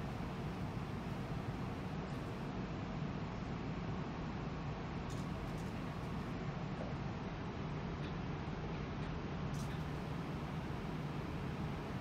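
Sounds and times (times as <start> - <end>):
steady low hum with hiss: 0.0 - 12.0.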